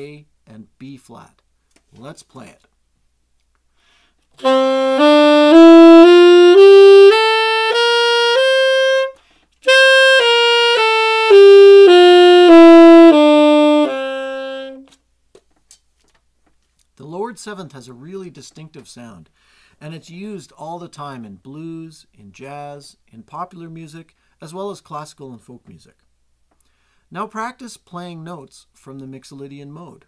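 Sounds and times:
player breathing: 3.7 - 4.3, 9.2 - 9.6, 19.4 - 19.8, 26.6 - 27.1
saxophone playing a scale: 4.4 - 15.0.

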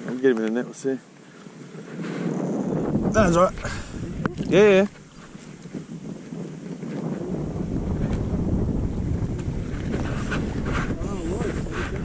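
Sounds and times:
wind buffeting microphone: 1.4 - 12.0.

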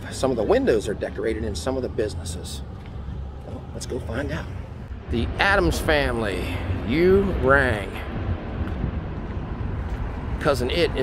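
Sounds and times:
wind buffeting microphone: 2.6 - 11.0.

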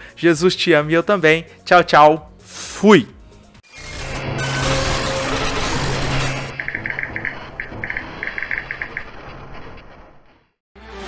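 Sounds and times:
high chirping digital blips: 6.5 - 9.1.

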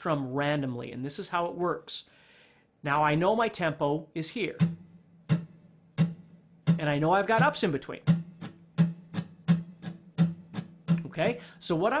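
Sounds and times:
acoustic guitar strumming: 4.5 - 11.5.

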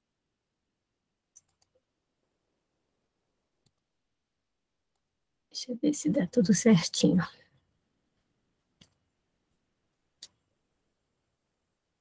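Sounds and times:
faint computer clicks: 1.3 - 1.8.

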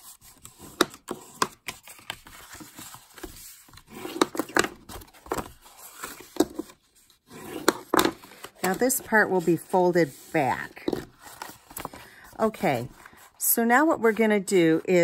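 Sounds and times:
paper rubbing scrapes: 7.2 - 11.6.

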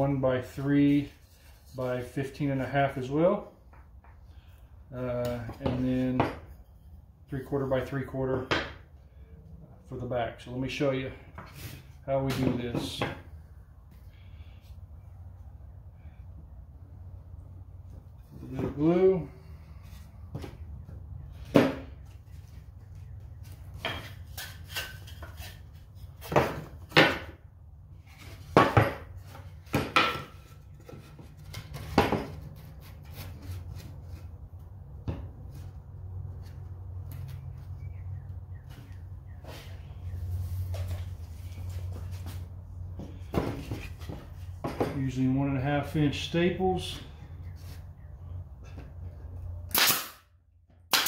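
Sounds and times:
wooden boards knocking: 28.4 - 31.1.

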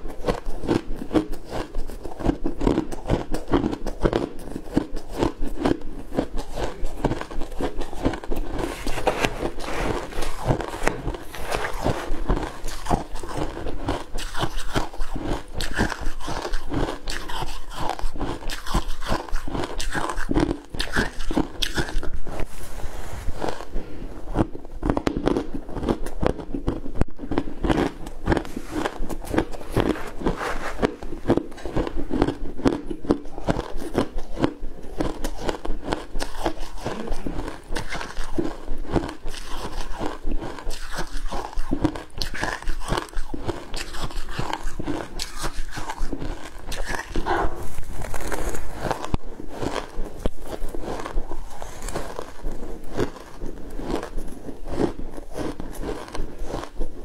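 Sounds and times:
ice crunching and chewing: 0.0 - 57.0.

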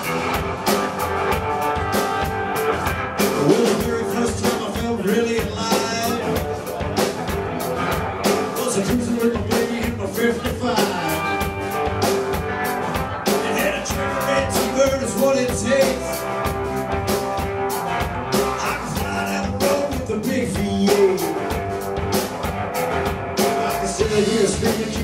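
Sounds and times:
driving drum beat: 0.0 - 25.0
electric guitar melody: 0.0 - 25.0
upright bass: 0.0 - 25.0.

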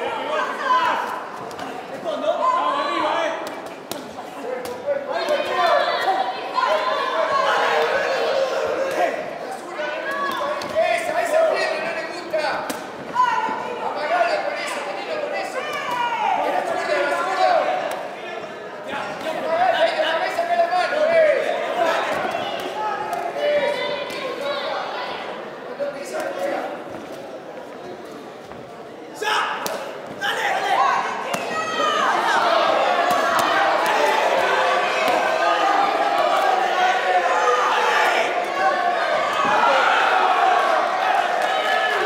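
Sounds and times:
voices in a large hall: 0.0 - 42.0.

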